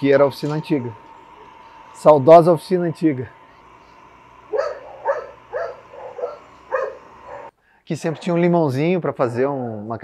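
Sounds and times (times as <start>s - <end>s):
dog barking: 4.5s - 7.5s.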